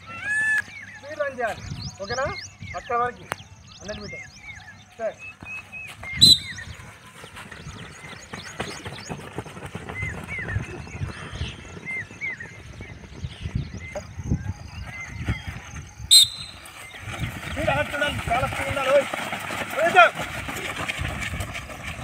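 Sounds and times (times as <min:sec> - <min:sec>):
small birds chirping: 0:00.0 - 0:22.0.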